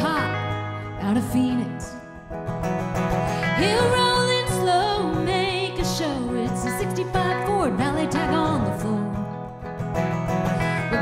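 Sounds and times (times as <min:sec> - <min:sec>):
woman singing: 0:00.0 - 0:02.0, 0:03.4 - 0:09.4, 0:10.6 - 0:11.0
electric guitar: 0:00.0 - 0:11.0
strummed acoustic guitar: 0:00.0 - 0:11.0.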